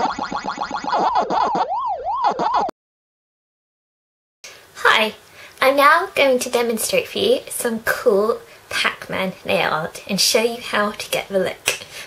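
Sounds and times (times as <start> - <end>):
warbling electronic game tone: 0.0 - 2.7.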